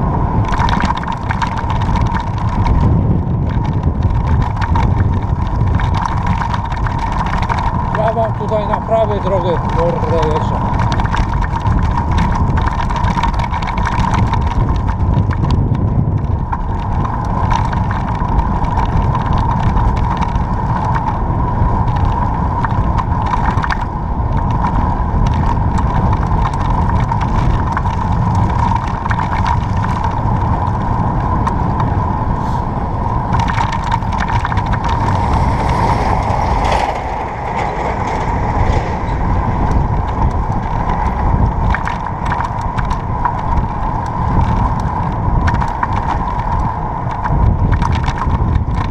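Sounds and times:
wind rumbling on microphone: 0:00.0 - 0:48.9
small rattling clicks: 0:00.4 - 0:31.9, 0:33.3 - 0:48.9.

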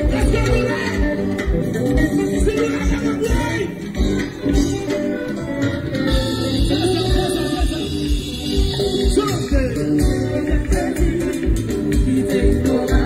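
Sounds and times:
gospel band music: 0:00.0 - 0:13.0
person singing: 0:06.0 - 0:13.0
steady drum beat: 0:06.0 - 0:13.0.

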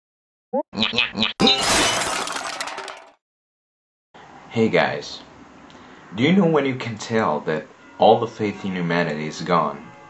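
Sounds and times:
shattering crash: 0:01.4 - 0:03.2
crackling debris: 0:01.6 - 0:03.2.

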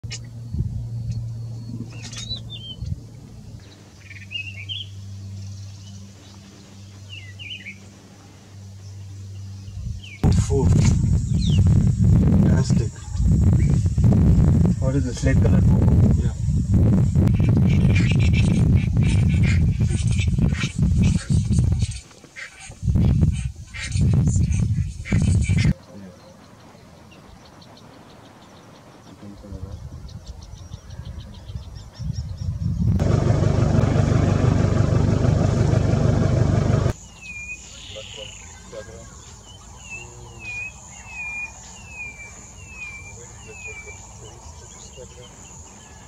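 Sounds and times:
bird twittering calls: 0:00.0 - 0:07.9, 0:08.8 - 0:11.9, 0:17.0 - 0:34.4, 0:36.9 - 0:46.0
steady low hum: 0:00.0 - 0:22.0, 0:32.8 - 0:37.0
chirps and clicks: 0:00.1 - 0:00.3, 0:01.0 - 0:03.0
loud low rumble: 0:32.9 - 0:37.0.

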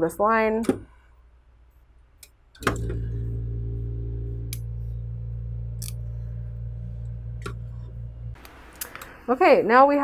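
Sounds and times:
heat sealer humming: 0:02.6 - 0:09.1.

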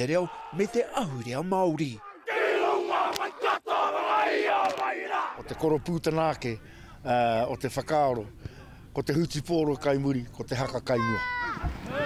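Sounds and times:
young men shouting in unison: 0:00.0 - 0:01.4, 0:02.0 - 0:05.7
sharp slaps: 0:03.0 - 0:03.4, 0:04.5 - 0:05.0.

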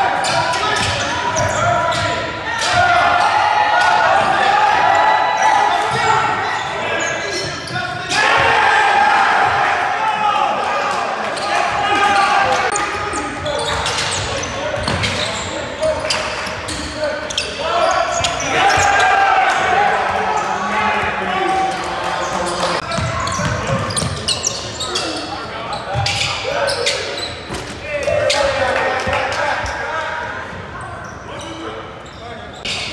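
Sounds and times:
players' voices: 0:00.0 - 0:32.9
sneakers squeaking on hardwood: 0:00.2 - 0:03.3, 0:05.8 - 0:08.4, 0:11.4 - 0:19.7, 0:21.6 - 0:28.5
basketball bouncing: 0:22.9 - 0:24.2.

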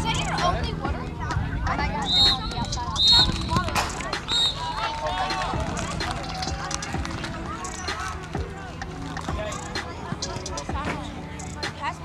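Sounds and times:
children's voices chattering: 0:00.0 - 0:12.0
sports whistle blasts: 0:02.1 - 0:03.4, 0:04.3 - 0:04.7.

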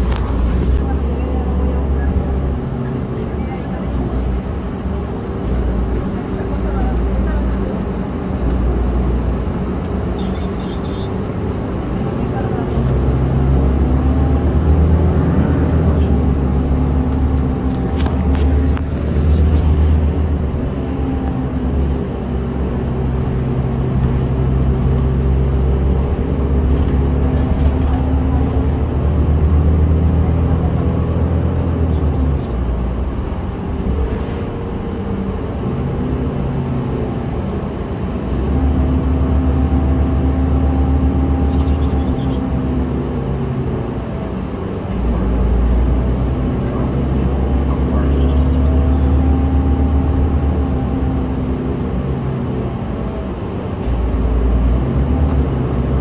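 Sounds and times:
bus engine droning: 0:00.0 - 0:56.0.

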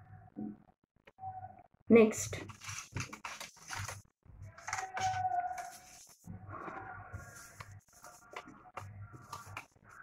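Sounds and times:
crepe paper rustling: 0:02.4 - 0:10.0.

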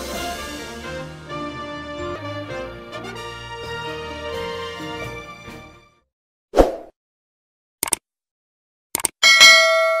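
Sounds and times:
quick clicks: 0:07.8 - 0:08.0, 0:08.9 - 0:09.2
notification bell ding: 0:09.2 - 0:10.0.

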